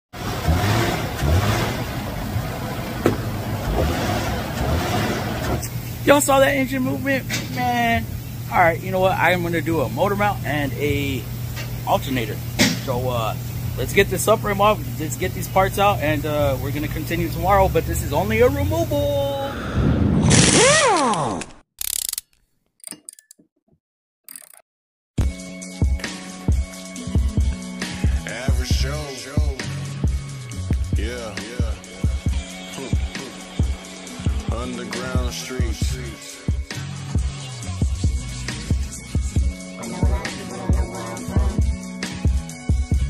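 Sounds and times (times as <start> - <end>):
car engine revving: 0.1 - 8.5
mechanical clicks and knocks: 21.8 - 23.5, 24.3 - 24.6
sharp click: 24.3 - 24.6.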